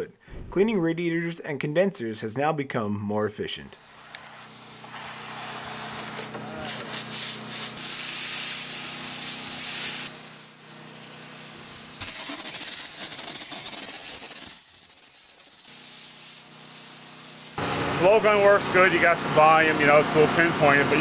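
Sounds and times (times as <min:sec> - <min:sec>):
compressed air blow gun hissing: 0:03.8 - 0:17.6.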